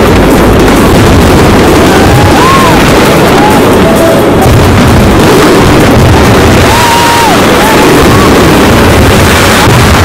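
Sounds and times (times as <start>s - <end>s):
fireworks bursting and crackling: 0.0s - 10.0s.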